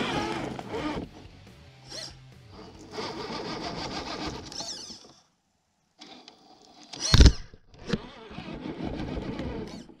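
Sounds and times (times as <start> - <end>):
electric motor and gears whirring: 0.0 - 5.3, 6.0 - 10.0.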